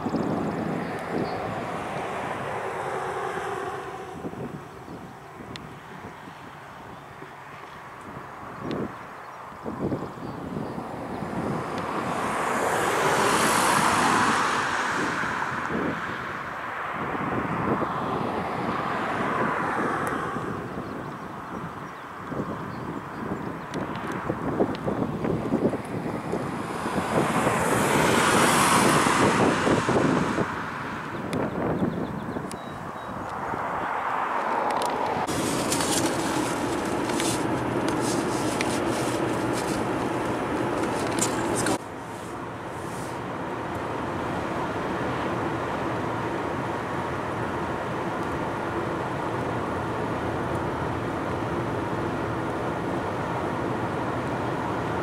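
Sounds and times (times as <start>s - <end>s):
car road noise from inside: 0.0s - 6.1s, 22.8s - 55.0s
vehicles passing at speed: 0.0s - 55.0s.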